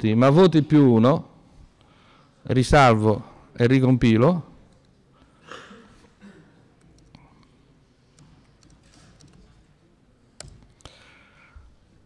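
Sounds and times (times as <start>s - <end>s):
computer keyboard keystrokes: 8.2s - 9.6s, 10.4s - 11.0s.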